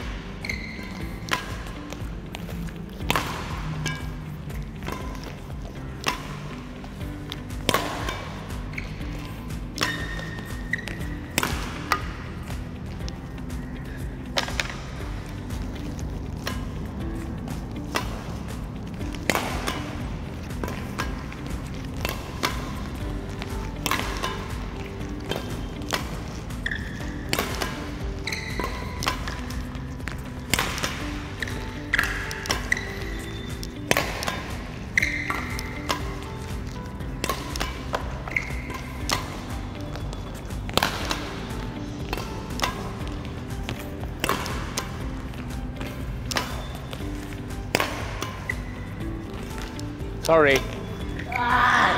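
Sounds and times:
badminton rackets hitting shuttlecocks: 0.0s - 51.9s
music playing: 0.0s - 51.9s.

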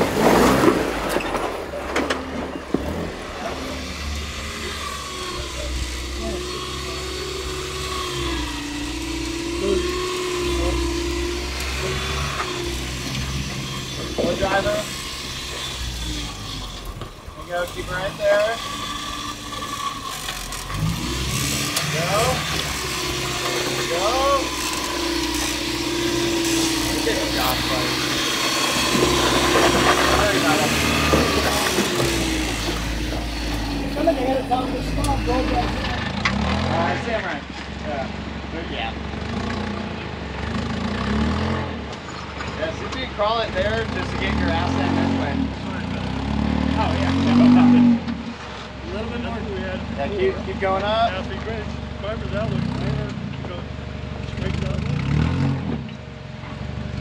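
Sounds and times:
car engine droning at low speed: 0.0s - 57.0s
voices in background: 29.4s - 39.1s, 42.4s - 55.1s.

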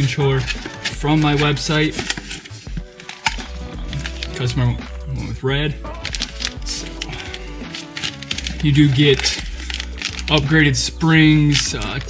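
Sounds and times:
cardboard and plastic rustling: 0.0s - 4.8s, 5.9s - 12.0s
background music: 0.0s - 12.0s.

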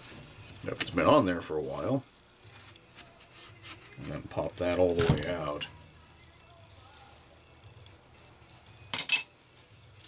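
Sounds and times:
metal tool clinking on metal: 8.9s - 9.4s.

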